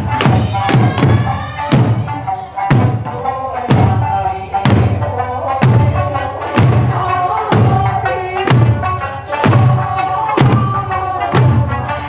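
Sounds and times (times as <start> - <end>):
barrel drums struck in unison: 0.0 - 5.0, 5.6 - 11.7
folk music from loudspeaker: 0.0 - 12.0.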